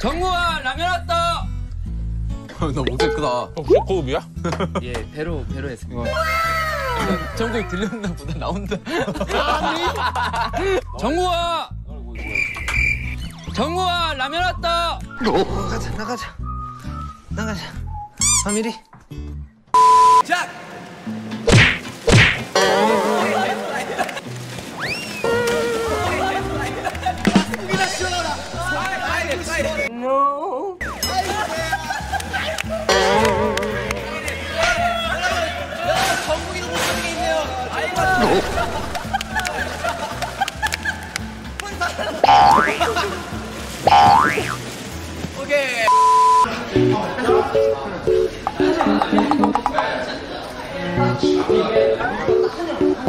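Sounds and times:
steady test-tone beep: 19.8s - 20.2s, 45.9s - 46.5s
cartoon boing spring effect: 21.6s - 23.2s, 32.9s - 34.0s, 42.2s - 42.9s, 43.9s - 44.6s, 48.5s - 49.9s
background music with beat: 27.0s - 29.0s, 46.6s - 50.0s, 51.2s - 53.0s.

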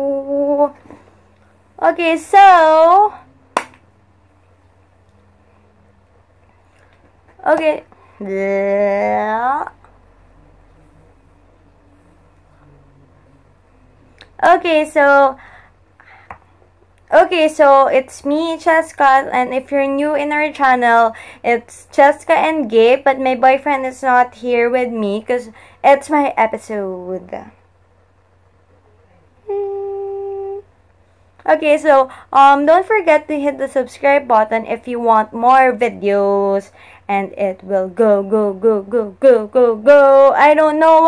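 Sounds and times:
woman humming: 0.0s - 1.1s, 28.9s - 30.7s
faint low hum: 0.0s - 41.0s.

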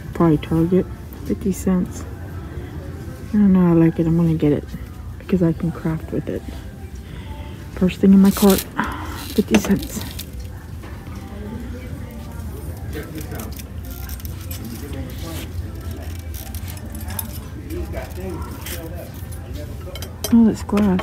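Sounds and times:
faint background music: 0.0s - 21.0s
distant chatter: 1.3s - 21.0s.

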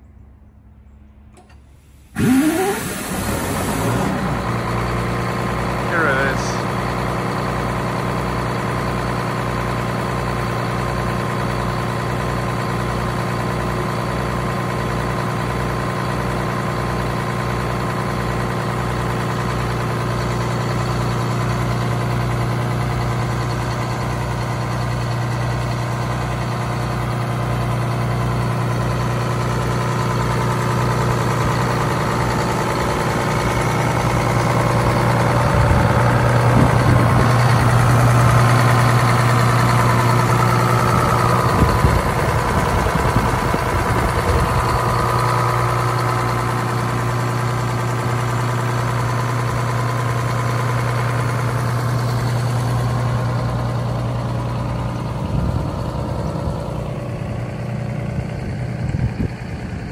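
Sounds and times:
high engine whine: 0.0s - 7.4s, 30.0s - 48.4s
diesel bus engine idling: 0.1s - 59.9s.

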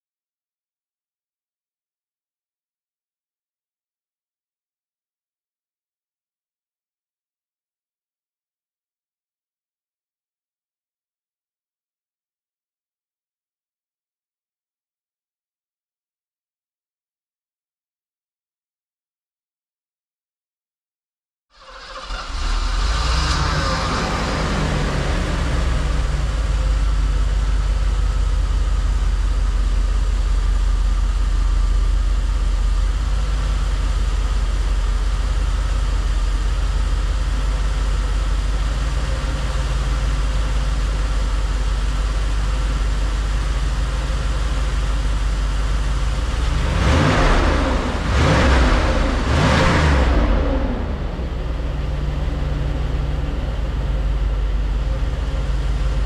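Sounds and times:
car engine idling and revving: 21.6s - 56.0s.

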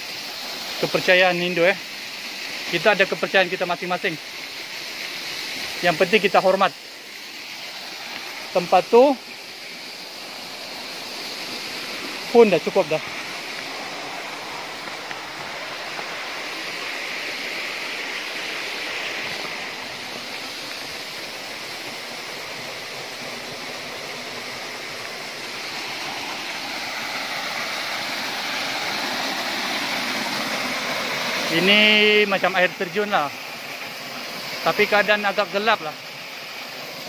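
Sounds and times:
waterfall rushing: 0.0s - 37.0s.

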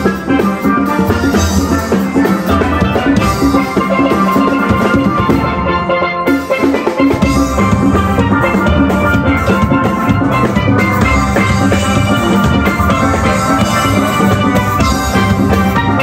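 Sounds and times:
drums keeping the beat: 0.0s - 16.0s
steel band playing: 0.0s - 16.0s.

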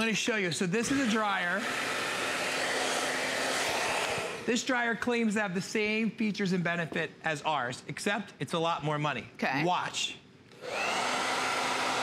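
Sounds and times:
hair dryer running: 0.8s - 4.5s, 10.5s - 12.0s.

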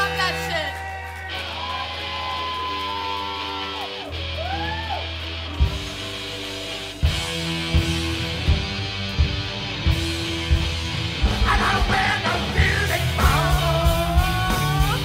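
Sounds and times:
electric guitar bending notes: 0.0s - 15.0s
punk rock band playing: 0.0s - 15.0s.

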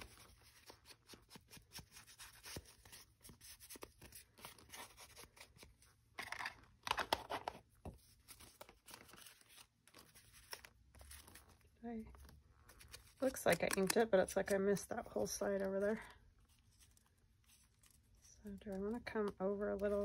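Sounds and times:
paper handling: 0.0s - 14.6s.

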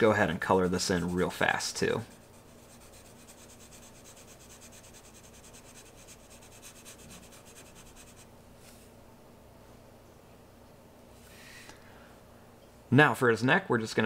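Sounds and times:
marker scribbling on card: 0.7s - 8.3s.

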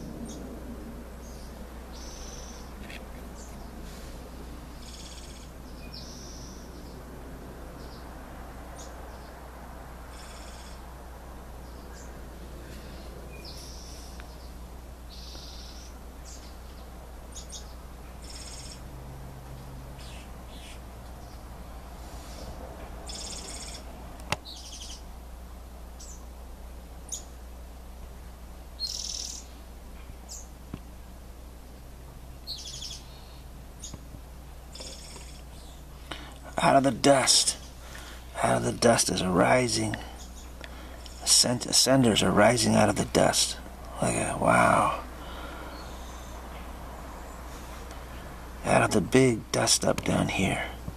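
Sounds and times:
steady low hum: 0.0s - 50.9s.

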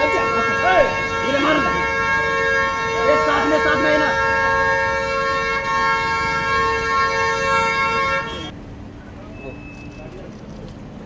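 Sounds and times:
voices: 0.0s - 5.4s, 7.6s - 11.0s
car horn two-tone honk: 0.0s - 8.5s
street noise: 0.0s - 11.0s.

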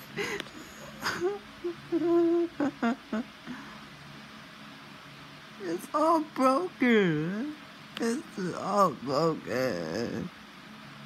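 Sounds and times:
person humming: 0.1s - 3.7s.

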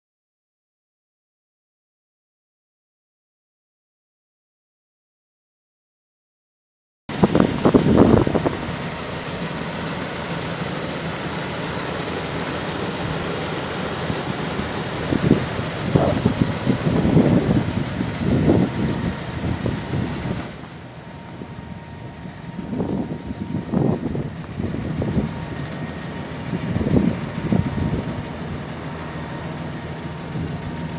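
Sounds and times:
wind on microphone: 7.1s - 8.8s, 14.1s - 20.6s, 21.3s - 28.4s
truck engine idling: 7.1s - 30.9s.

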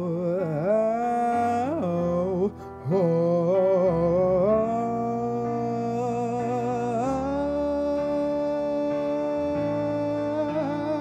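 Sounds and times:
man singing long note: 0.0s - 11.0s.

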